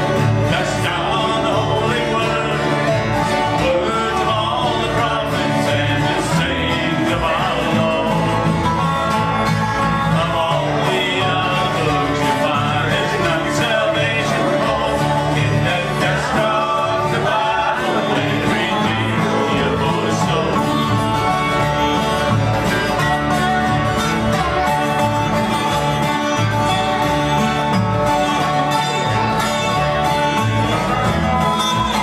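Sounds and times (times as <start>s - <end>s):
acoustic guitars: 0.0s - 32.0s
slide resonator guitar: 0.0s - 32.0s
upright bass: 0.0s - 32.0s.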